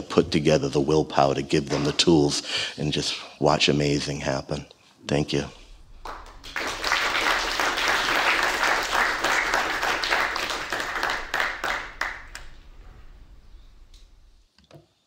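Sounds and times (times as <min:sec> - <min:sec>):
audience applauding: 0:05.7 - 0:14.1.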